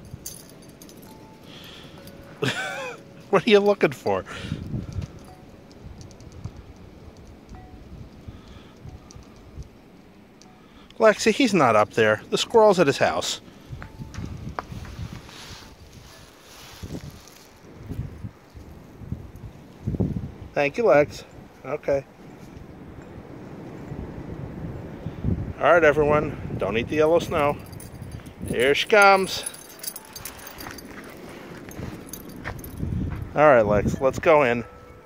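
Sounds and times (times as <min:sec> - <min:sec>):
light clicks: 0:04.9 - 0:09.8
footsteps in deep snow: 0:14.4 - 0:18.2, 0:29.0 - 0:33.3
dog paws on concrete: 0:27.8 - 0:33.3.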